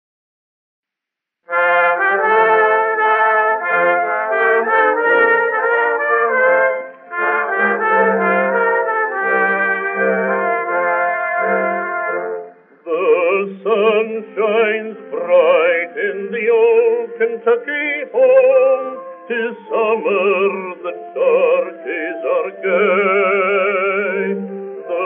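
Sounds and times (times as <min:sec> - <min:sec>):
old phonograph brass music: 0:01.5 - 0:25.0.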